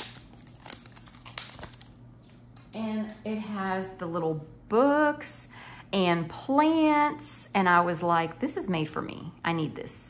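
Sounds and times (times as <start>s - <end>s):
plastic wrapping crinkling: 0.0s - 2.5s.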